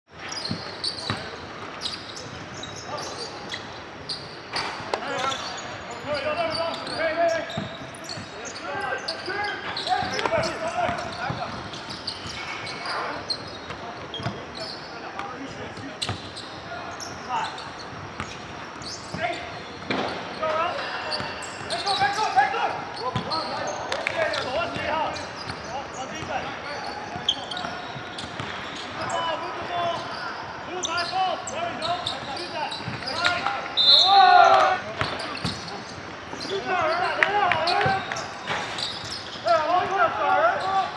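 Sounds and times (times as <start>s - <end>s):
players shouting and chatting: 0.3s - 40.9s.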